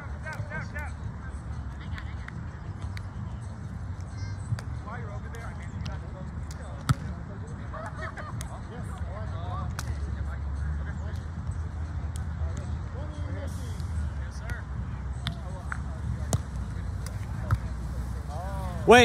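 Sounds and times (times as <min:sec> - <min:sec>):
faint voices of players: 0:00.0 - 0:19.0.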